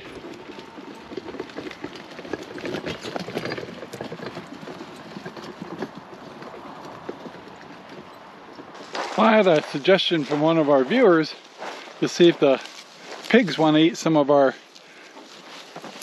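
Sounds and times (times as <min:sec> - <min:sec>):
cart rattling over rough ground: 0:00.0 - 0:16.0
footsteps: 0:00.0 - 0:16.0.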